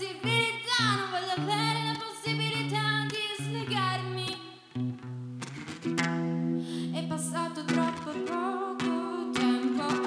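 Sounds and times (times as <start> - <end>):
woman singing: 0.0 - 4.8, 6.7 - 10.0
electric guitar chords: 0.0 - 10.0.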